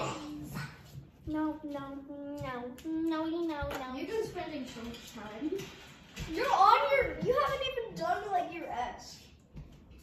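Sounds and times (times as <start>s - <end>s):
child singing wordless tune: 0.0s - 4.7s.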